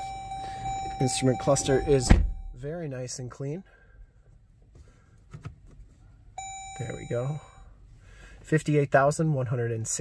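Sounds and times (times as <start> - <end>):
dashboard warning chime: 0.0 - 3.9, 6.4 - 7.8.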